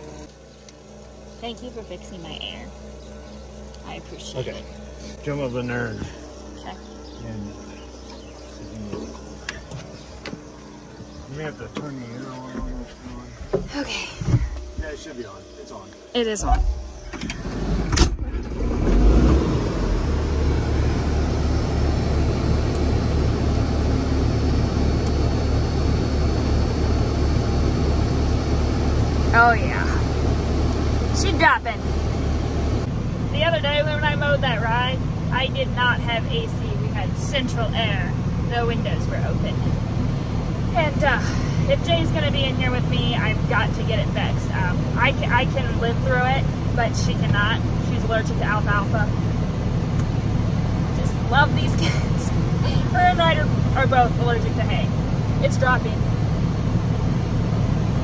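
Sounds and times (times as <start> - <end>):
diesel tractor engine running: 0.0 - 58.0
woman talking: 1.4 - 2.8, 3.8 - 4.7, 6.6 - 6.9, 13.7 - 14.4, 16.1 - 16.6, 29.3 - 30.1, 31.1 - 31.9, 33.3 - 39.7, 40.7 - 49.2, 50.9 - 56.1.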